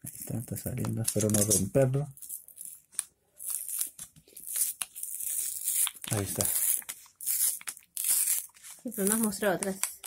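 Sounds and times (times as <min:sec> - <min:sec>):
plastic clicks and crackles: 0:00.7 - 0:01.7, 0:08.9 - 0:10.0
knife cutting plastic packaging: 0:03.4 - 0:10.0.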